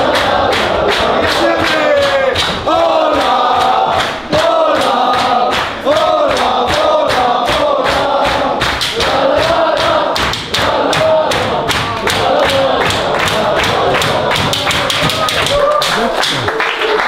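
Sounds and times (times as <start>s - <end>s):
group singing a chant: 0.0s - 16.1s
rhythmic hand clapping: 0.0s - 17.0s.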